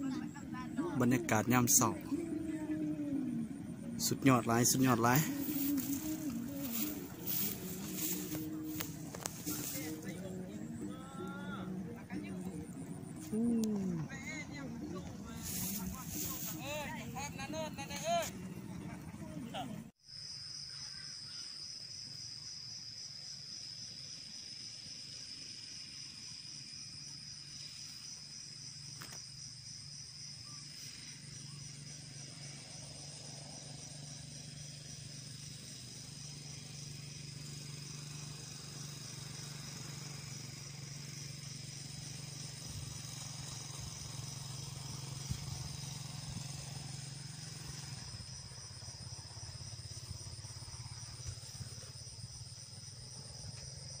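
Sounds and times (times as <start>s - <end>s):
low engine hum: 0.0s - 20.0s, 30.6s - 53.9s
insects chirring: 0.0s - 54.0s.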